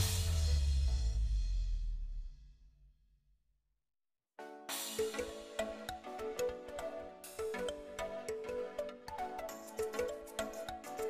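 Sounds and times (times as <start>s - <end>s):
background music: 0.0s - 2.0s, 4.4s - 11.0s
drum and cymbal hit: 0.0s - 2.5s.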